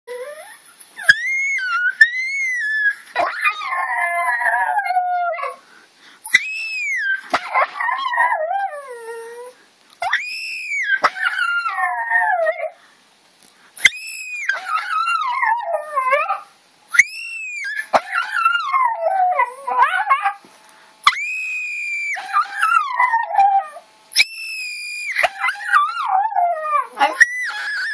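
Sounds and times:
small dog howling: 0.1 - 5.6, 6.3 - 12.8, 13.8 - 20.4, 21.0 - 27.9.

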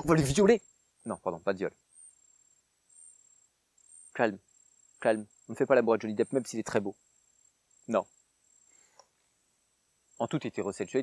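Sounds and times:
high-pitched insect trilling: 0.0 - 11.0
faint tick: 8.9 - 9.2.

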